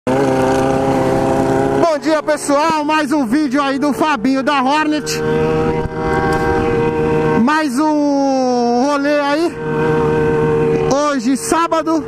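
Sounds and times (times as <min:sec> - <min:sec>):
motorcycle engine humming: 0:00.1 - 0:12.0.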